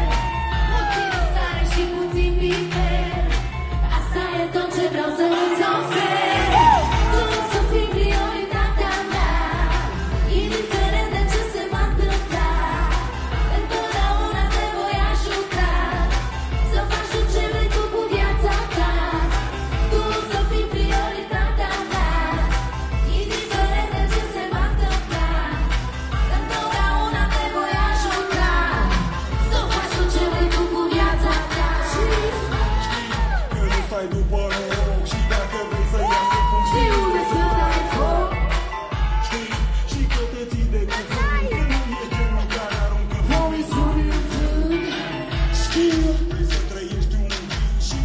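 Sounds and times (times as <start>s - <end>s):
backing track with heavy bass beat: 0.0s - 4.3s, 6.3s - 48.0s
woman singing into microphone: 0.0s - 33.5s, 36.0s - 39.2s, 40.7s - 42.0s, 43.3s - 46.2s.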